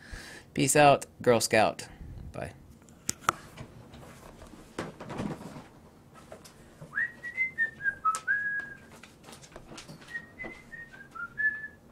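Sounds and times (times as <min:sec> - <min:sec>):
person whistling a tune: 0:06.9 - 0:08.8, 0:10.1 - 0:11.8.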